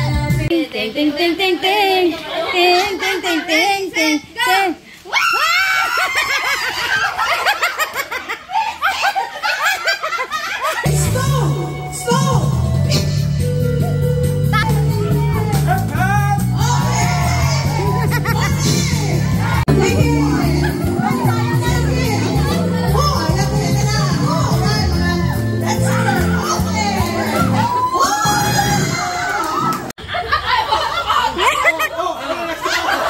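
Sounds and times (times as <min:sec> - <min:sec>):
party music over speakers: 0:00.0 - 0:02.2, 0:10.8 - 0:29.2
people laughing: 0:05.3 - 0:11.0, 0:15.2 - 0:28.0, 0:29.6 - 0:33.0
crowd shouting: 0:15.0 - 0:23.3, 0:25.7 - 0:29.9.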